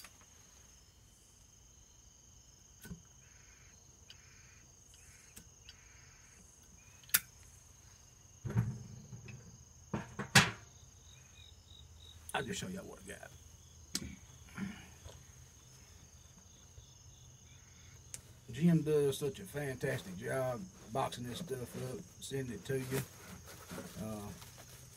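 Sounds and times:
insects chirring: 0.0s - 24.9s.

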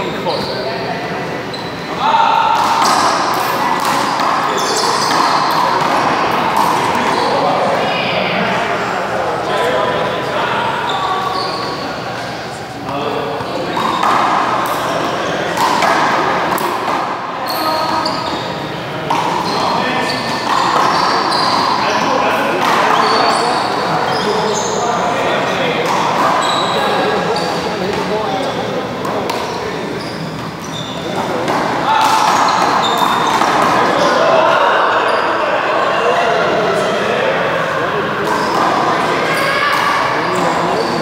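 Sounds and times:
sneakers squeaking on floor: 0.0s - 8.1s, 10.6s - 35.6s, 38.2s - 41.0s.

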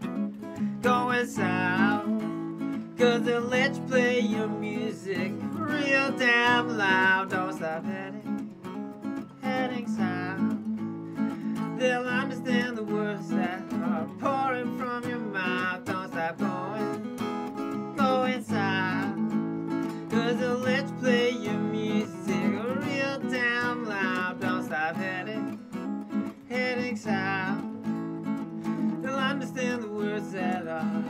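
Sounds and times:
strummed acoustic guitar: 0.0s - 31.0s
man singing long notes: 0.7s - 2.4s, 3.0s - 8.2s, 18.0s - 19.2s, 20.0s - 25.5s.

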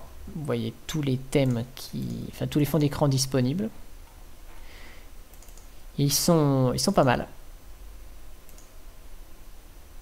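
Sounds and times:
computer mouse click: 5.3s - 5.7s, 8.4s - 8.8s.

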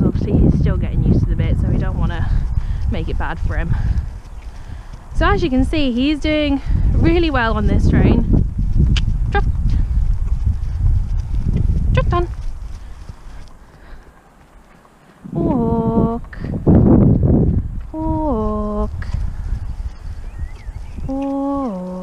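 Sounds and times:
hooves thudding on turf: 0.0s - 22.0s.

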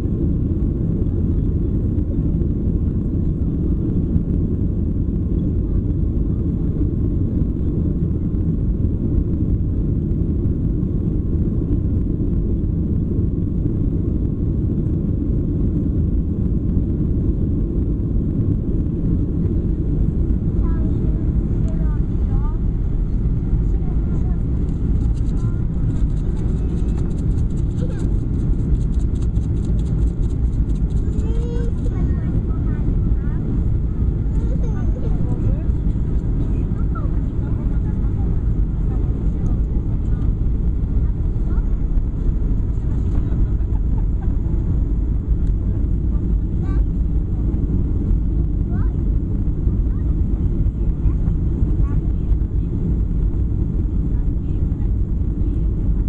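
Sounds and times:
airplane cabin rumble: 0.0s - 56.0s.

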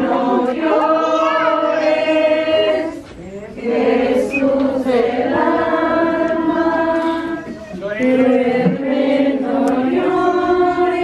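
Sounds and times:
group singing devotional song: 0.0s - 11.0s.

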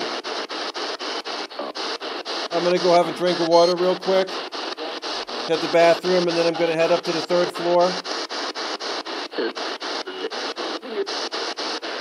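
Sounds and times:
radio static bursts: 0.0s - 12.0s
snatches of broadcast sound: 0.0s - 12.0s.

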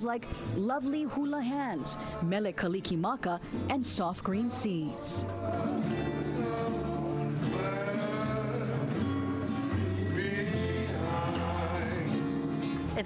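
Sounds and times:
upright bass: 2.7s - 13.0s
people singing long notes: 4.7s - 12.6s
ukuleles strumming: 5.0s - 13.0s.

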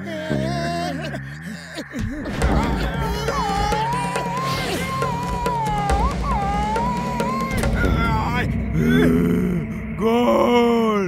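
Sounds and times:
deep male voice groaning: 7.6s - 11.0s.

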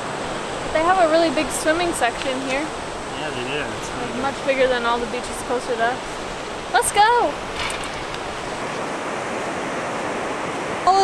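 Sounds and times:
surf on sandy beach: 0.0s - 11.0s.

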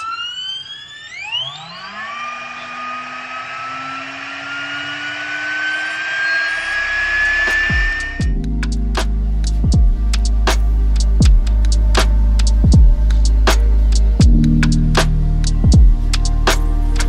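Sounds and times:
hair straightener fan whining: 0.0s - 8.4s
music: 6.8s - 17.0s.

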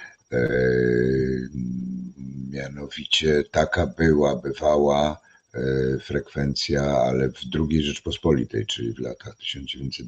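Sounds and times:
man's drawn-out hesitation sound: 0.0s - 10.0s.

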